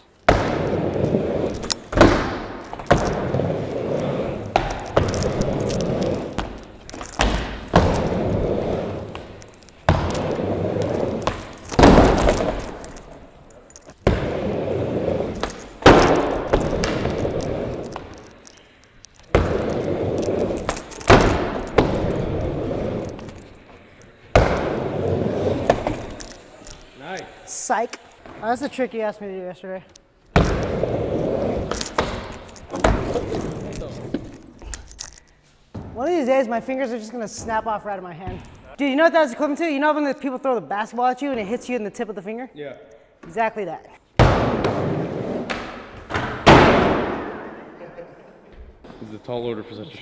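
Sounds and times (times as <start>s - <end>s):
skateboard wheels rolling: 0.0s - 28.8s, 30.3s - 34.6s, 44.2s - 47.6s.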